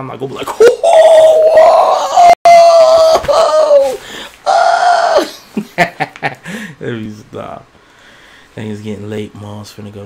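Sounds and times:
man whooping: 0.6s - 5.4s.

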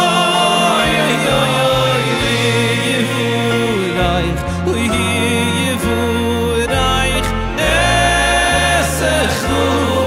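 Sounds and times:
live band playing: 0.0s - 10.0s
man singing into microphone: 0.0s - 10.0s
sustained bass notes: 0.0s - 10.0s.

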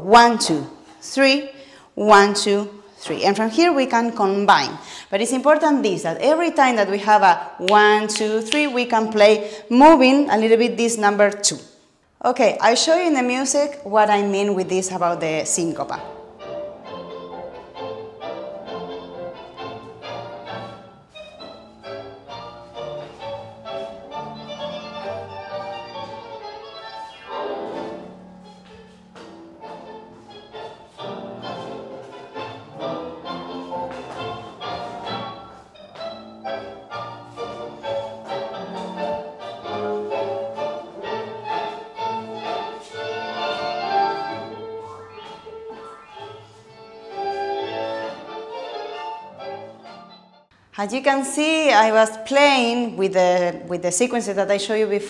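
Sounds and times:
orchestra playing tango music: 16.0s - 50.5s.

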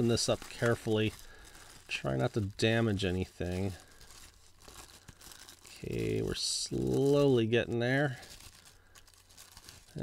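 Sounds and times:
plastic wrap crinkling and tearing: 0.0s - 10.0s.

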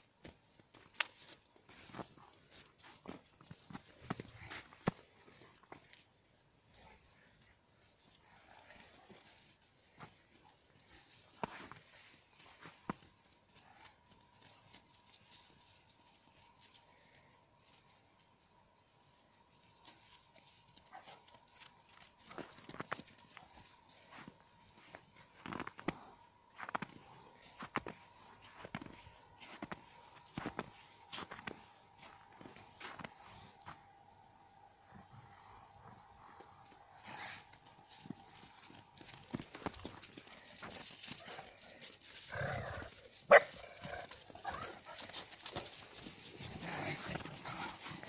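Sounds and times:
paws crunching in snow: 0.0s - 48.0s
footsteps crunching in snow: 0.2s - 5.9s, 19.6s - 33.9s
dog barking: 20.9s - 21.4s, 43.3s - 43.9s.

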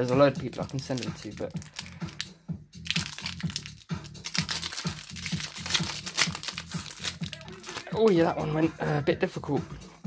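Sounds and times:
foil wrapper crinkling and tearing: 0.0s - 8.2s
background music with low beat: 0.0s - 10.0s.

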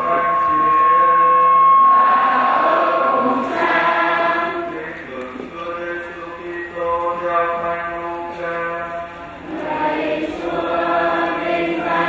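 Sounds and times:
liturgical chant into microphone: 0.0s - 12.0s.

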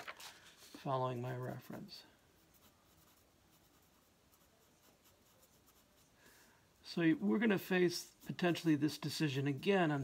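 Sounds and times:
marker rubbing on paper: 1.2s - 6.2s.

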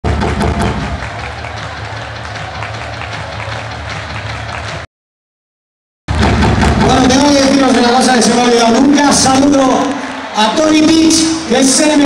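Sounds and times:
electronic dance music: 0.0s - 4.8s, 6.1s - 12.0s.

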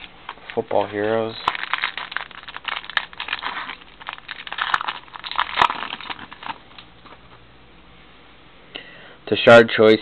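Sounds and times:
plastic wrapper crinkling: 0.0s - 7.3s.

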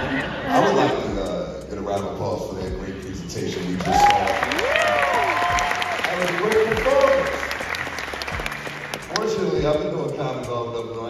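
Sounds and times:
audience applauding: 3.5s - 9.6s
shouted whoops: 3.8s - 6.2s.

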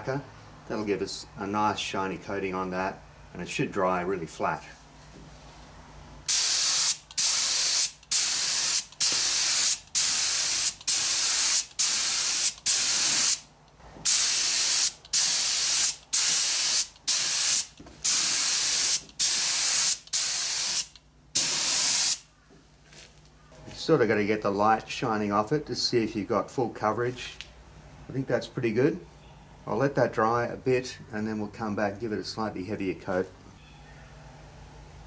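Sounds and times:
spray gun hissing bursts: 6.3s - 13.4s, 14.0s - 22.3s.

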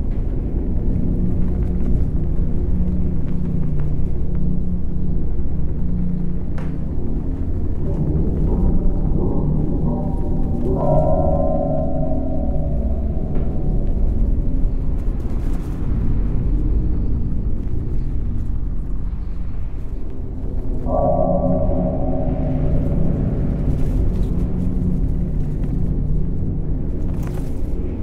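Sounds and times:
deep rumbling drone: 0.0s - 28.0s
gong-like ringing chord: 7.8s - 15.7s, 20.8s - 25.8s.

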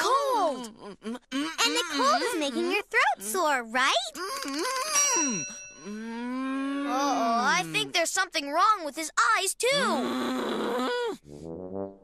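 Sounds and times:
bright bell ding: 5.0s - 6.2s
man groaning: 6.0s - 7.6s.

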